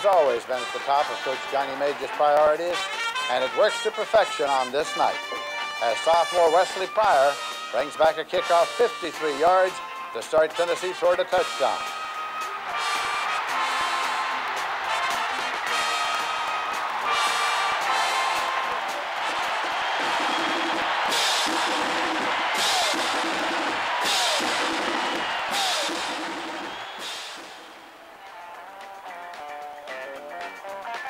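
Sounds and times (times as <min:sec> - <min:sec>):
marching band playing: 0:00.0 - 0:29.4
stadium crowd noise: 0:00.0 - 0:31.0.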